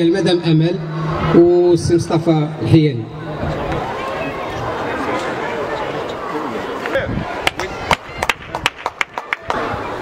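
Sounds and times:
murmur of crowd voices: 0.0 - 10.0
people clapping: 6.8 - 10.0.

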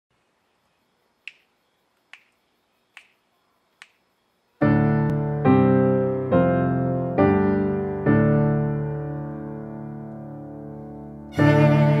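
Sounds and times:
finger snaps: 1.2 - 3.2, 3.8 - 4.0.

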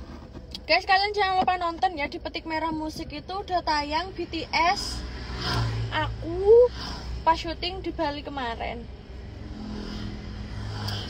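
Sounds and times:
car engine hum: 0.0 - 11.0
road noise: 0.0 - 11.0.

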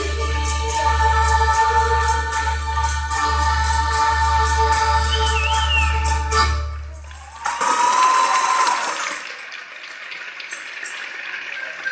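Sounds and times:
music: 0.0 - 8.0
high cheer: 7.0 - 9.4
audience applause: 7.0 - 11.9.

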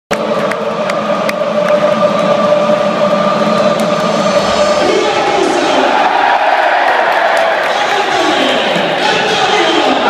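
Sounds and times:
stadium crowd din: 0.1 - 10.0
sharp beats: 3.8 - 7.8.

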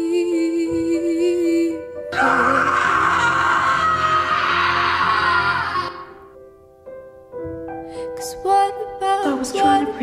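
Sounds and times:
background music: 0.0 - 10.0
woman screaming: 2.1 - 6.2.

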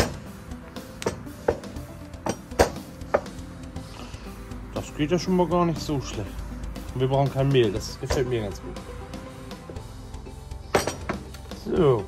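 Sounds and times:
background music: 0.0 - 12.0
rolling pin knocking on hard surface: 1.0 - 3.4.

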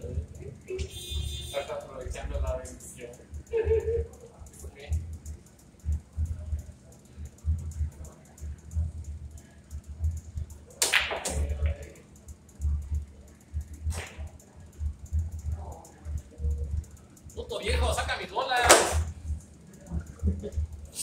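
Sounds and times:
pool balls clicking: 10.1 - 12.2, 18.6 - 19.2
cue striking ball: 10.8 - 11.5.

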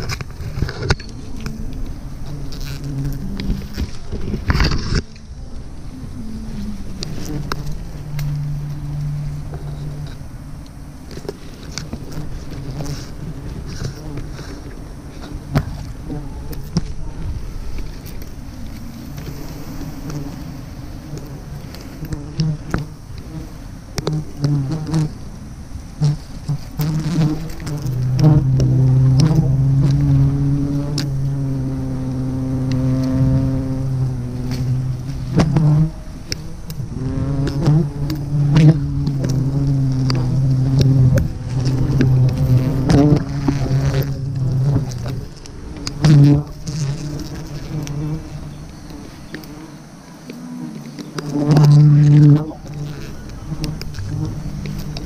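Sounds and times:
branches rustling and clicking: 0.0 - 55.0
swarm of bees buzzing: 0.0 - 55.0.

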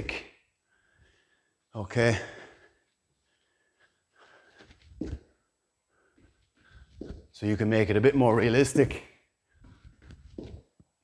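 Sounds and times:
man breathing hard: 0.5 - 7.3
bare foot thud on wooden floor: 4.8 - 5.4, 6.9 - 7.3, 9.6 - 10.7.

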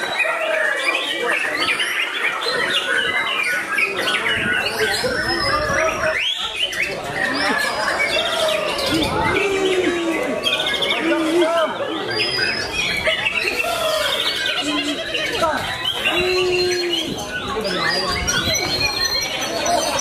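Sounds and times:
songbirds singing: 0.0 - 20.0.

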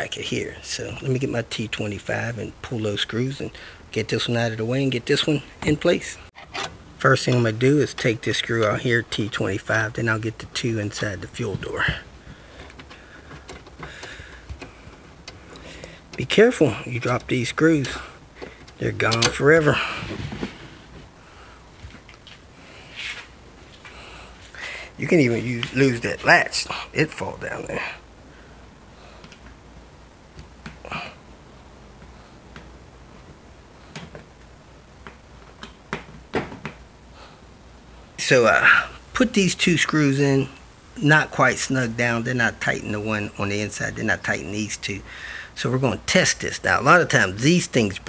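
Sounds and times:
screw being unscrewed ticking: 12.6 - 16.4, 17.0 - 19.4
screwdriver clicking and tapping: 12.7 - 15.4.

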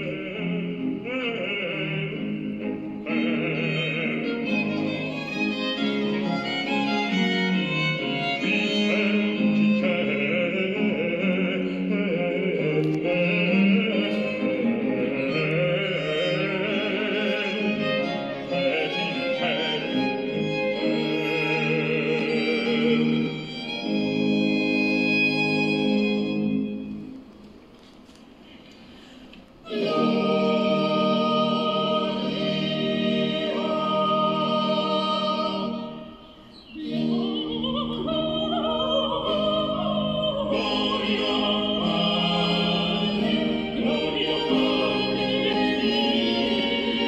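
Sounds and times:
singers holding a chord: 0.0 - 27.1, 29.6 - 47.0
violin melody with strings: 0.0 - 27.4, 29.6 - 47.0.

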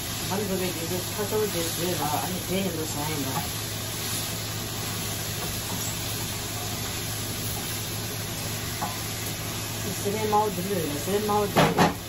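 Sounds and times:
vegetables sizzling in a frying pan: 0.0 - 12.0.

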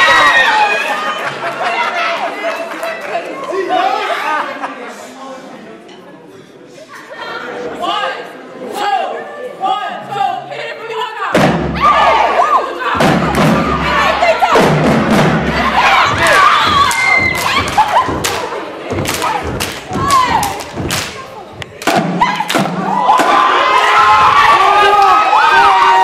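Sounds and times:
crowd shouting and cheering: 0.0 - 4.8, 6.9 - 26.0
marching drumline hits: 11.3 - 23.6.

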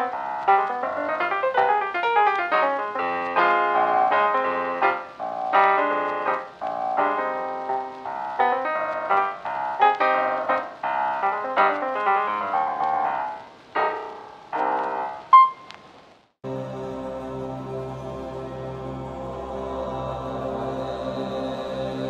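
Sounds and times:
piano music: 0.0 - 15.8, 16.4 - 22.0.

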